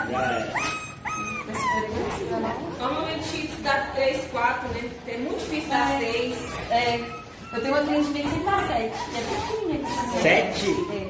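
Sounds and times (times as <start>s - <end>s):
puppy whining: 0.0s - 3.3s, 5.8s - 11.0s.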